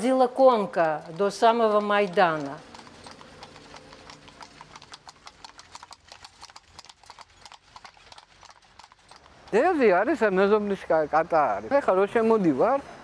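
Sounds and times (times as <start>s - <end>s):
clip-clop of horse hooves: 0.0s - 12.8s.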